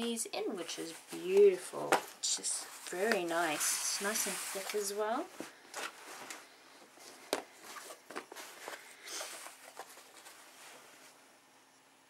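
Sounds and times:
fabric rustling: 0.6s - 11.2s.

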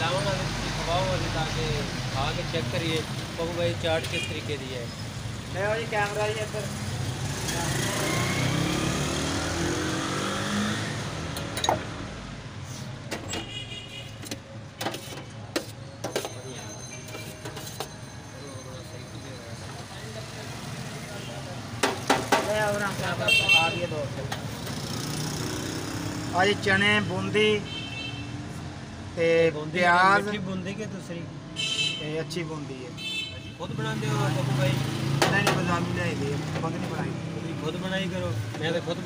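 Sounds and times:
street traffic rumble: 0.0s - 39.0s
vehicle engine accelerating: 6.6s - 12.1s.

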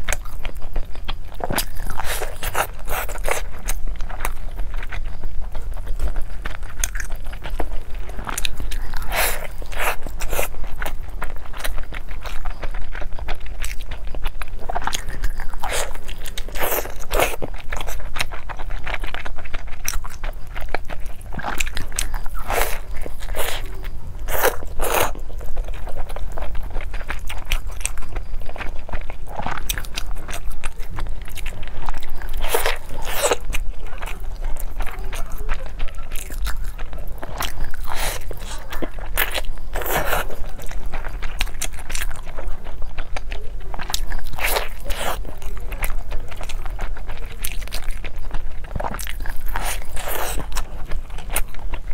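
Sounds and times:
chewing: 0.0s - 51.9s
crunchy biting: 0.0s - 51.9s.

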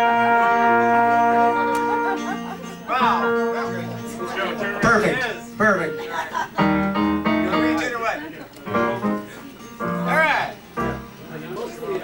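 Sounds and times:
sustained piano chords: 0.0s - 12.0s
voices chattering: 0.1s - 12.0s.

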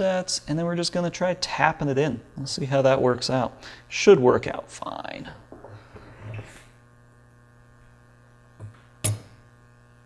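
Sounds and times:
electrical mains hum: 0.0s - 10.0s
hammer striking steel screw: 9.0s - 9.4s.

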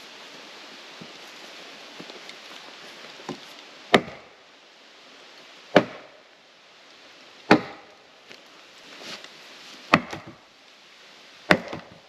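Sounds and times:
hatchet chopping wood: 3.3s - 4.3s, 5.7s - 6.2s, 7.5s - 7.9s, 9.9s - 10.4s, 11.5s - 12.0s.

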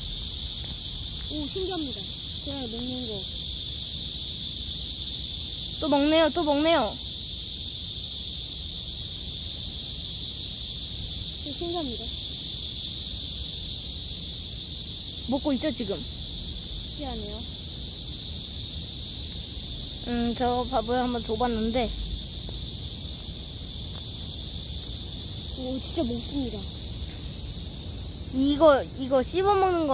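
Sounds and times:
insect chorus hissing: 0.0s - 29.9s.

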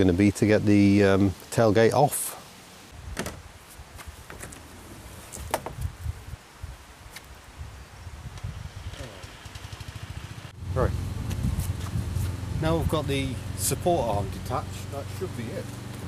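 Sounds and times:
low rumbling noise: 8.6s - 16.0s.

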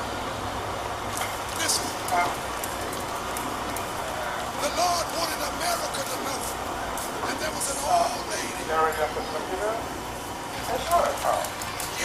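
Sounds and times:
indistinct voices in a room: 1.0s - 12.0s.

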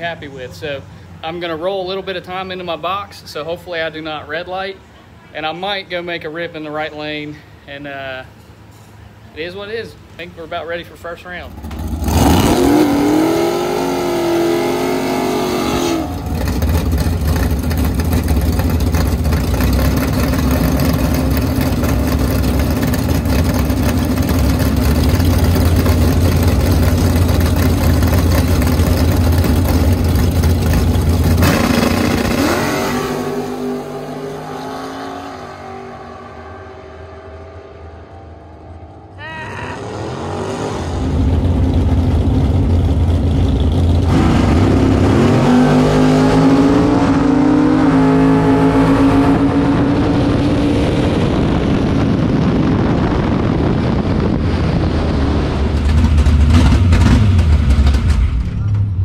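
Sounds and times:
race car engine revving: 11.5s - 59.0s.

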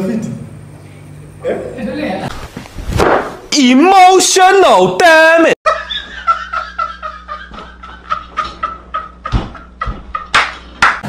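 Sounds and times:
steady low hum: 0.0s - 3.8s
loud thumps: 2.8s - 3.5s
man laughing hysterically: 5.6s - 10.6s.

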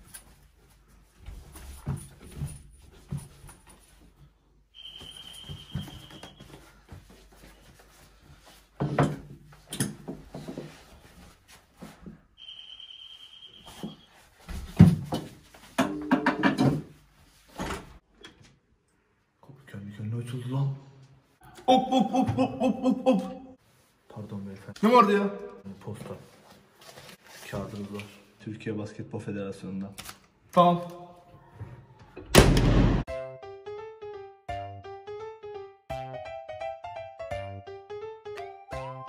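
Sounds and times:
high-pitched electronic tone: 4.8s - 6.4s.

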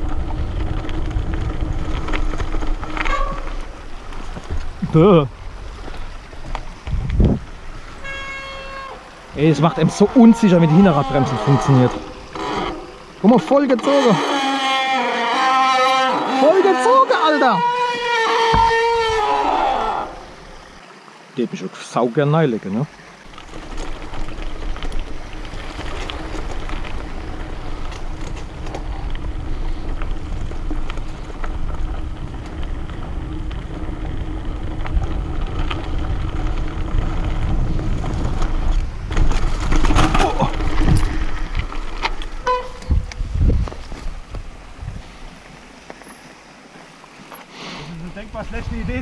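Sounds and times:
bike chain and frame rattling: 0.0s - 20.0s, 23.3s - 44.2s
bike tyres rolling over dirt: 0.0s - 21.0s, 22.4s - 49.0s.

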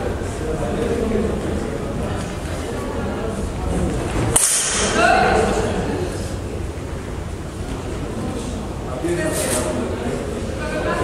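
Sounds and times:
voices: 0.0s - 11.0s
short bright hiss: 4.4s - 4.9s
sword strike crack: 4.4s - 5.0s.

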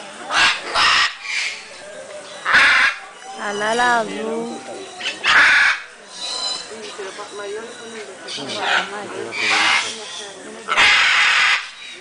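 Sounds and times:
macaw squawking harshly: 0.3s - 1.6s, 2.4s - 3.8s, 5.0s - 6.7s, 8.5s - 12.0s.

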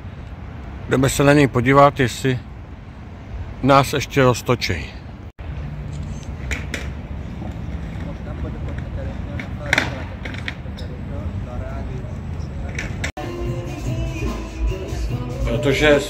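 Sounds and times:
low city rumble: 0.0s - 16.0s.

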